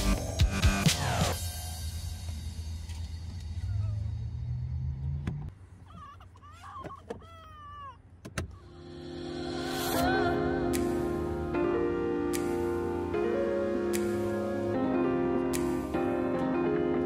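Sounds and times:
music: 0.0 - 4.5, 8.7 - 17.0.

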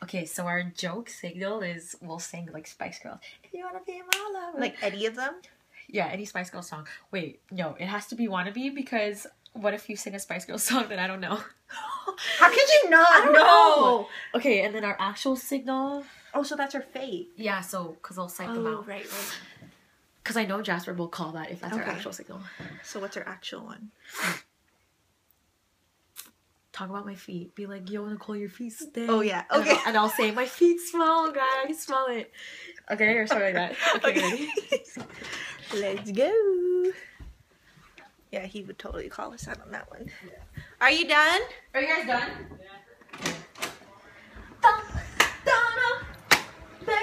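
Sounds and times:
person sneezing: 24.1 - 24.5
women laughing and calling out: 44.6 - 46.2
sharp hand clap: 45.2 - 45.4, 46.2 - 46.6.

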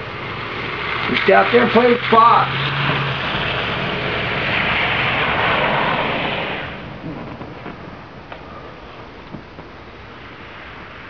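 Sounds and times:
car driving past: 0.0 - 9.3.

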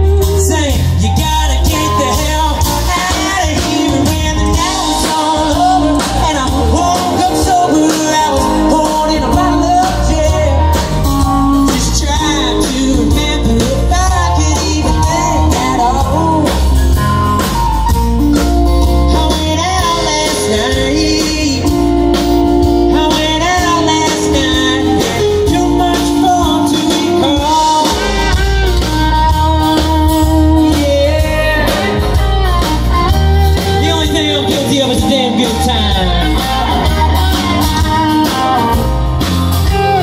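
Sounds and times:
person singing: 0.0 - 17.1, 18.4 - 40.0
live blues-rock band: 0.0 - 40.0.

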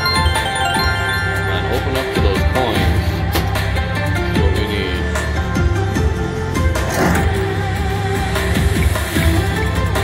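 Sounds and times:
slot machine electronic music: 0.0 - 5.0.

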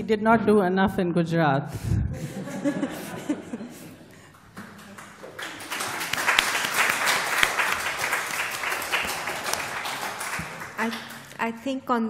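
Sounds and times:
audience applauding: 4.3 - 11.4.

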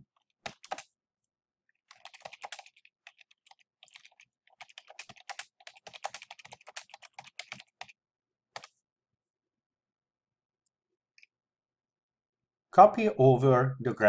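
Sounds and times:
computer keyboard typing: 0.0 - 0.9, 1.8 - 8.0, 8.6 - 8.8.

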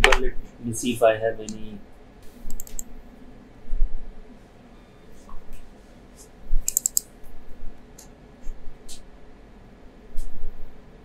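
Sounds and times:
computer keyboard and mouse clicks: 2.5 - 2.9, 6.6 - 7.1.

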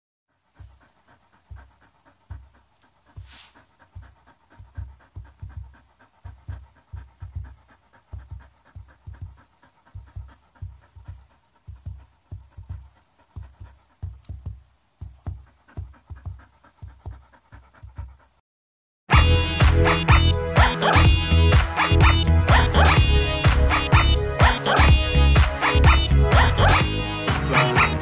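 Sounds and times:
dog panting: 0.3 - 18.4, 19.2 - 28.0
hands patting a dog: 0.6 - 18.2
short hiss: 3.2 - 3.6.

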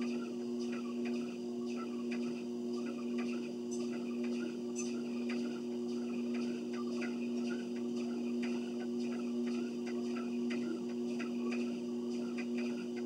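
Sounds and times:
treadmill motor hum: 0.0 - 13.0.

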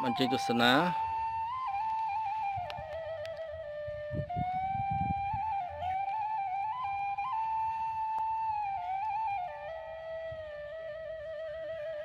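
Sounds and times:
slow solo flute melody: 0.0 - 12.0.

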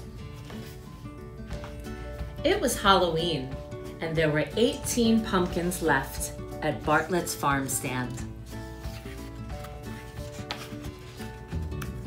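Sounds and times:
paper pages rustling: 0.0 - 1.9, 8.0 - 12.0
soft background music: 0.0 - 12.0.

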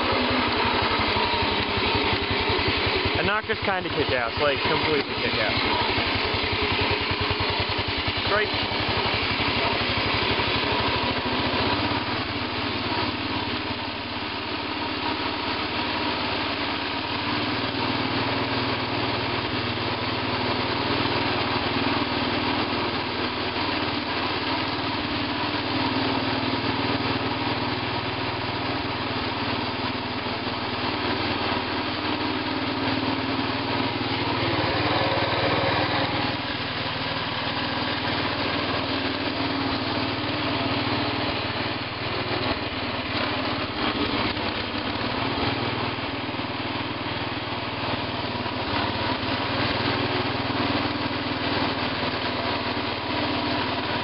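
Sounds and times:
garden tractor engine running: 0.0 - 54.0.

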